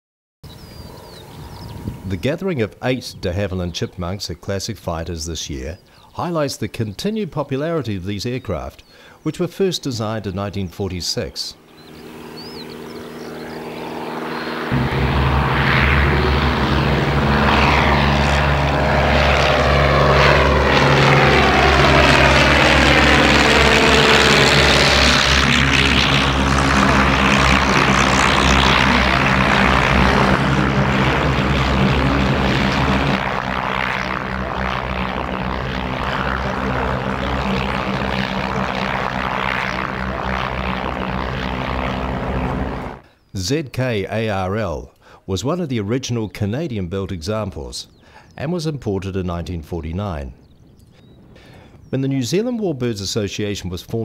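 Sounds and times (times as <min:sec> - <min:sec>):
propeller aircraft engine: 0:00.5 - 0:02.2, 0:11.6 - 0:43.1.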